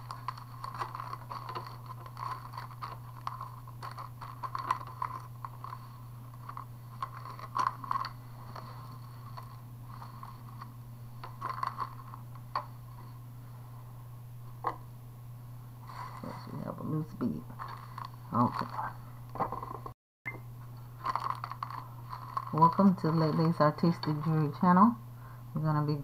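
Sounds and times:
plastic bags and beads rustling: 0:00.0 - 0:13.0, 0:20.9 - 0:24.6
steady low hum: 0:00.0 - 0:26.0.

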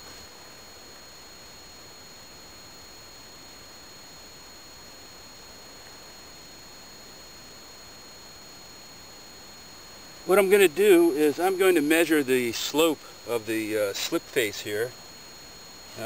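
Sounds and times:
faint steady hiss: 0:00.0 - 0:16.0.

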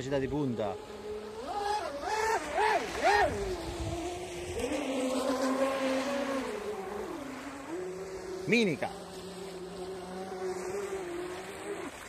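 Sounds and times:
electric motors whining: 0:00.0 - 0:12.0.

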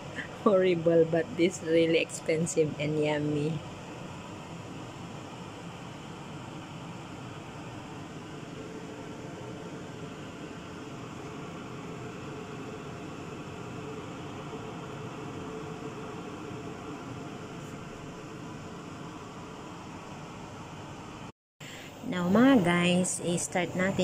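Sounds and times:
fan hiss and hum: 0:00.0 - 0:24.0.

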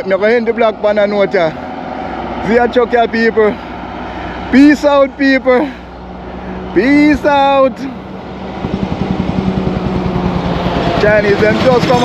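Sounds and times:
truck diesel engine rumbling: 0:00.0 - 0:12.0.

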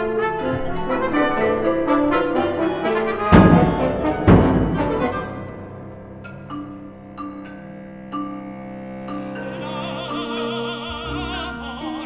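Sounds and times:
orchestral strings playing: 0:00.0 - 0:12.0.

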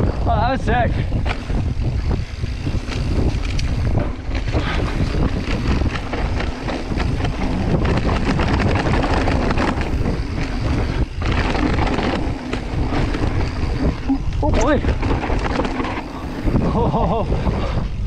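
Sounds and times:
bike rattles and knocks: 0:00.0 - 0:18.0
wind buffeting microphone: 0:00.0 - 0:18.0
tyres rolling over dry dirt: 0:01.0 - 0:18.0.

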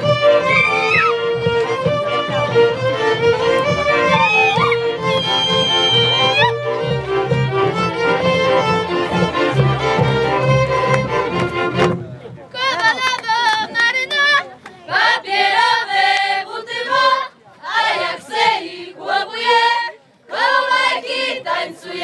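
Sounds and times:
folk string band playing: 0:00.0 - 0:22.0
women singing: 0:14.9 - 0:22.0.

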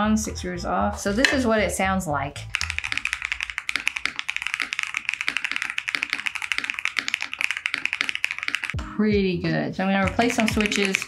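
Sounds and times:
mechanical keyboard typing: 0:02.4 - 0:08.8, 0:10.0 - 0:11.0.

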